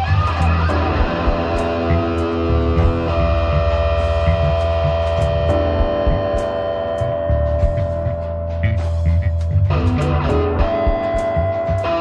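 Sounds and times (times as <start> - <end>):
deep bass: 0.0 - 12.0
sustained chord tones: 0.0 - 12.0.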